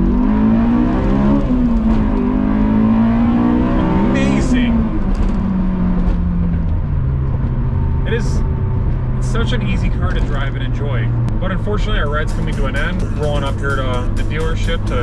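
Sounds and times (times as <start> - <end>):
car engine from inside cabin: 0.0 - 15.0.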